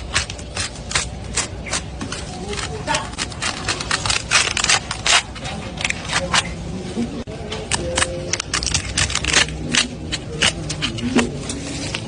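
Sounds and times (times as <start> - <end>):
knife scraping crackling skin: 0.0 - 6.7, 7.6 - 12.0.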